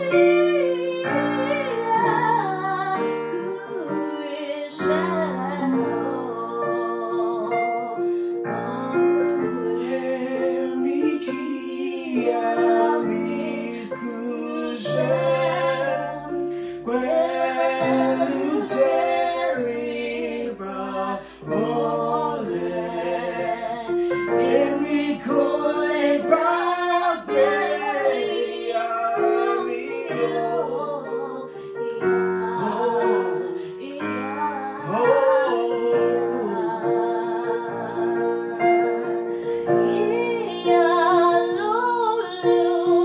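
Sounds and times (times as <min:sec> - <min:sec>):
woman and man singing: 0:00.0 - 0:43.0.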